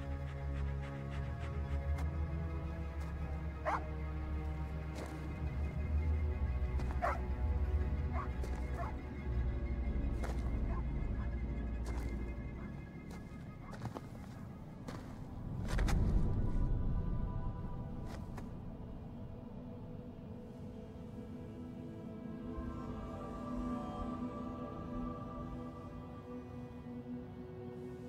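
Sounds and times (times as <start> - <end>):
low droning film score: 0.0 - 28.0.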